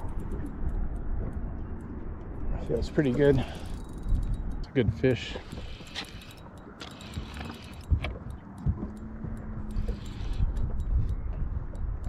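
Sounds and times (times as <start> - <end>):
wind rumble on microphone: 0.0 - 12.0
fishing reel cranking: 3.0 - 8.4, 9.0 - 11.2.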